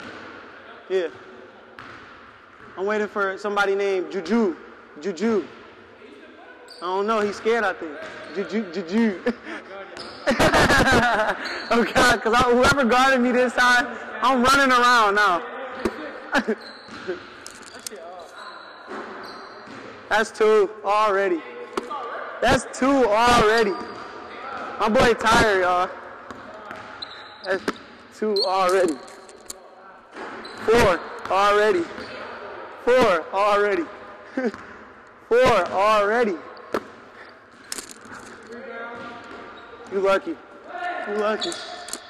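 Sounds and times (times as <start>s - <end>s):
background noise: 0.0s - 42.0s.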